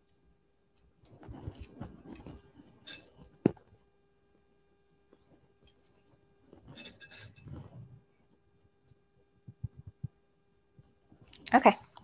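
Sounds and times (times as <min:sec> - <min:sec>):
small clicks and rustles: 0:00.7 - 0:04.0.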